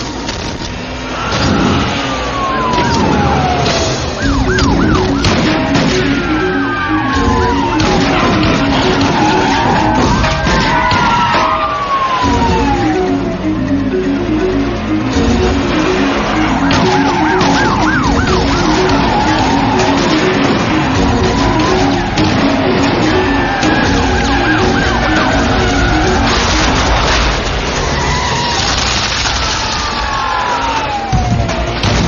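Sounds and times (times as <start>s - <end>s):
action music score: 0.0s - 32.0s
car noise: 0.0s - 32.0s
engine and road noise: 0.0s - 32.0s
police siren yelping: 1.1s - 32.0s.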